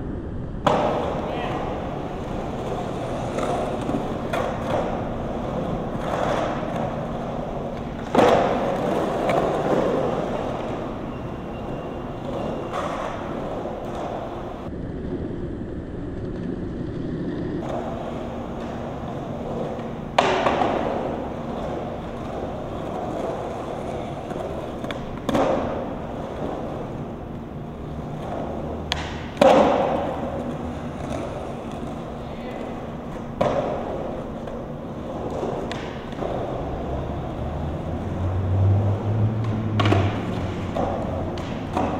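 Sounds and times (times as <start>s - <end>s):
skateboard wheels rolling on concrete: 0.0s - 41.9s
skateboard knocks and thuds: 0.6s - 11.1s, 17.6s - 27.0s, 27.9s - 37.4s, 39.3s - 41.9s.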